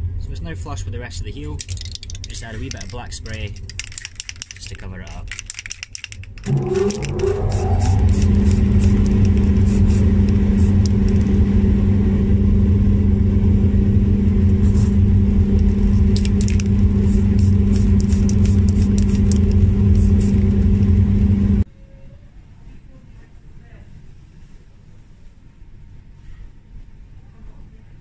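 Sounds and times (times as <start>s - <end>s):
electric motor hum: 6.2s - 21.6s.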